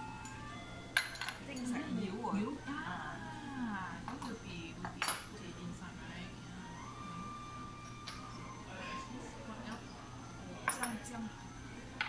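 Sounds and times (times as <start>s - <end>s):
ceramic dishes and spoon clinking: 1.0s - 1.8s, 4.1s - 5.4s, 10.6s - 11.2s
quiet talk: 8.2s - 12.0s.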